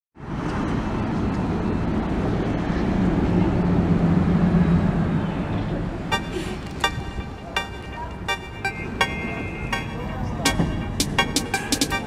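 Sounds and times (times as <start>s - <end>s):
vehicle engine low hum: 0.2s - 11.3s
city street traffic: 0.2s - 12.0s.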